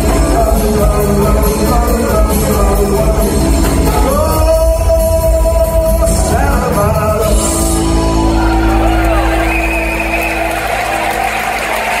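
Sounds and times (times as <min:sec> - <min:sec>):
crowd noise: 0:00.0 - 0:12.0
live rock band playing: 0:00.0 - 0:12.0.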